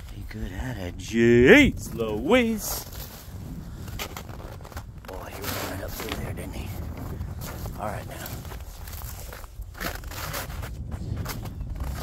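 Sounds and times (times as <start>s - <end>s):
wind rumble on microphone: 0.0s - 12.0s
footsteps crunching in snow: 2.2s - 12.0s.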